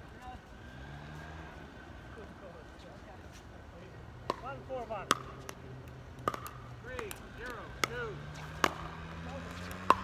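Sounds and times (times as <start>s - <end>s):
paddles hitting plastic ball: 4.2s - 10.0s.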